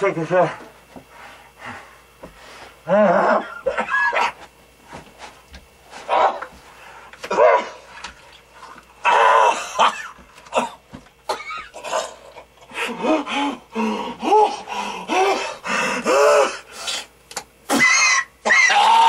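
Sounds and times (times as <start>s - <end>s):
man coughing and gasping: 9.6s - 12.3s.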